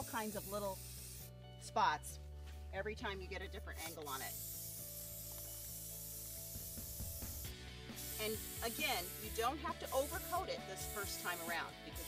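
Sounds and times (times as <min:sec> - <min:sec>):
spray can hissing: 0:00.0 - 0:01.3, 0:03.7 - 0:12.0.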